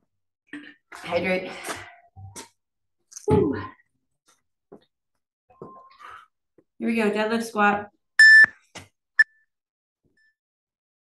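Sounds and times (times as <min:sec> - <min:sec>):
short electronic timer beep: 0:08.2 - 0:08.5.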